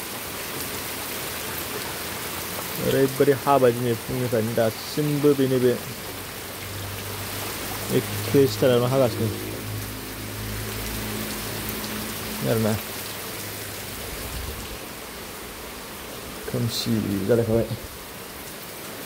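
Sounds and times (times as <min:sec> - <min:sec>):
heavy rain falling: 0:00.0 - 0:19.0.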